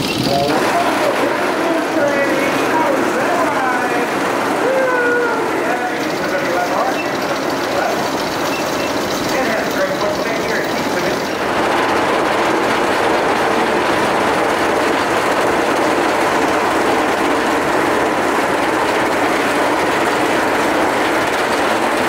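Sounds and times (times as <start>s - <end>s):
roller coaster lift chain clacking: 0.0s - 22.0s.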